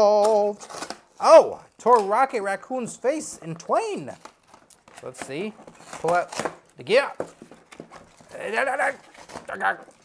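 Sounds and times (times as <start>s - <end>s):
cardboard packaging rustling: 0.2s - 10.0s.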